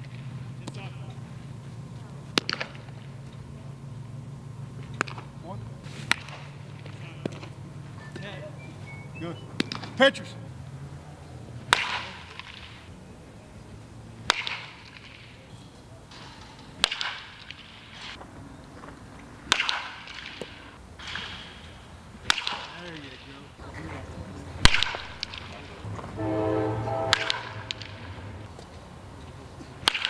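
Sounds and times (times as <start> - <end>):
baseball bat hitting balls: 0.0 - 30.0.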